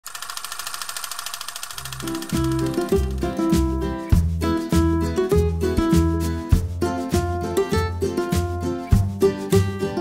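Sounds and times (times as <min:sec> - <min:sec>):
fast mechanical rattle: 0:00.0 - 0:03.4.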